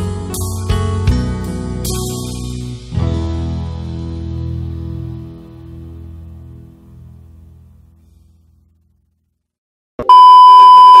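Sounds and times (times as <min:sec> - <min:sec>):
high test-tone beep: 0:10.0 - 0:11.0.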